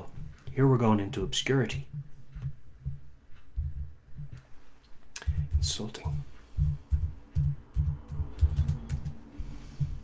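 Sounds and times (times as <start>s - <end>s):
typing on keyboard: 5.2s - 9.3s.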